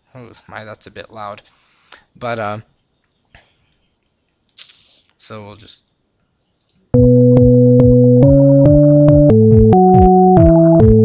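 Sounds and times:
faint breathy hiss: 1.2s - 6.5s.

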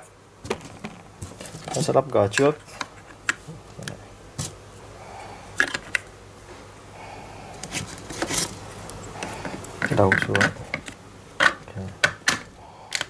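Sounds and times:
plastic parts clicking: 9.8s - 13.0s.

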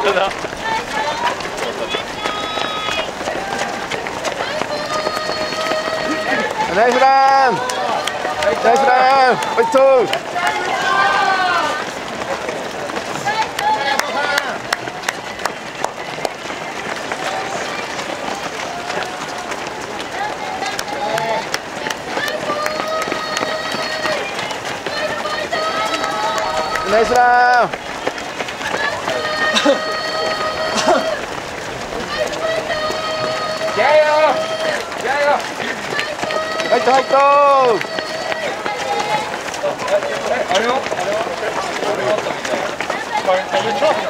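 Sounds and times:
runners' footsteps on road: 0.0s - 44.0s
spectators cheering: 0.0s - 44.0s
sharp loud shouts: 28.6s - 31.3s, 32.0s - 39.4s.

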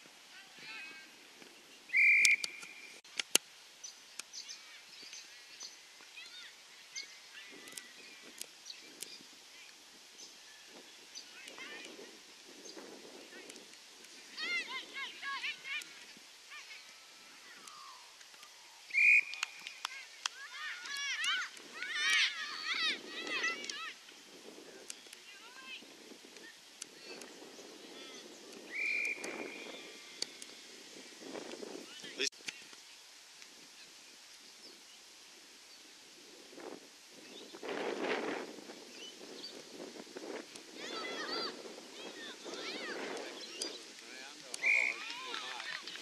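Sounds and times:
shrill whistle blast: 1.9s - 2.8s, 18.9s - 19.4s, 28.7s - 29.3s
sharp clicks: 2.2s - 3.4s
children shouting: 20.0s - 24.0s, 40.8s - 43.1s
distant voices: 40.7s - 46.0s.

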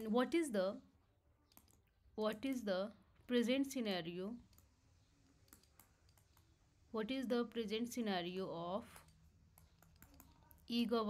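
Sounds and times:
stylus tapping on tablet: 1.5s - 2.7s, 4.4s - 6.6s, 8.8s - 10.7s.

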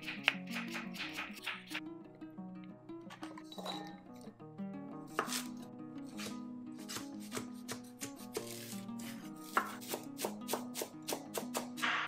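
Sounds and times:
background music: 0.0s - 12.0s
knife striking wooden cutting board: 5.2s - 5.5s.

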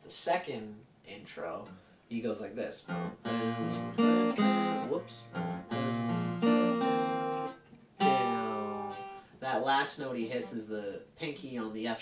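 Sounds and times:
acoustic guitar chords ringing: 2.9s - 9.3s.

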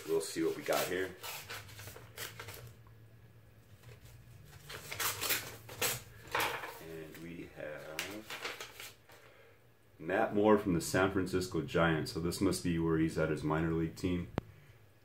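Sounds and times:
paper envelope rustling: 0.0s - 2.8s, 3.7s - 9.2s.

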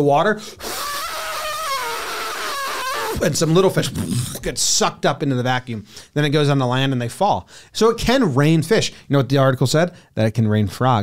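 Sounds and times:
man imitating wind: 0.6s - 4.7s.

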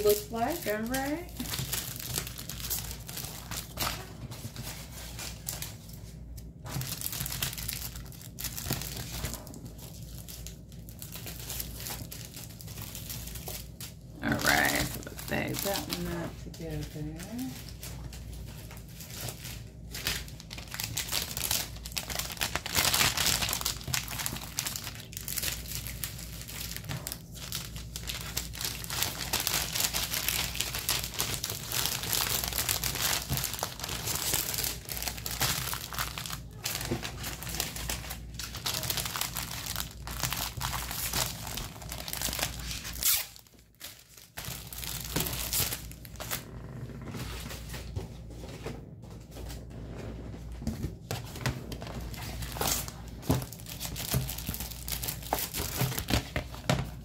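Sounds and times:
plastic packaging rustling: 0.0s - 57.0s.

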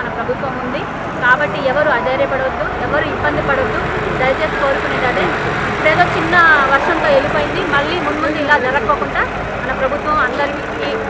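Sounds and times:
steady background noise: 0.0s - 11.0s
woman talking: 0.0s - 11.0s.

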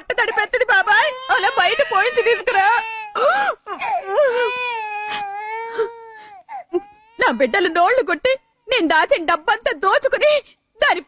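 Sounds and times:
baby crying: 0.2s - 8.0s.

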